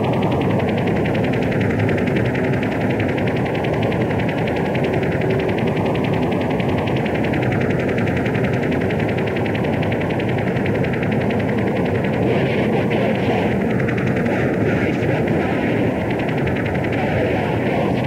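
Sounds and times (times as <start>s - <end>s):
distorted noise music: 11.4s - 18.0s.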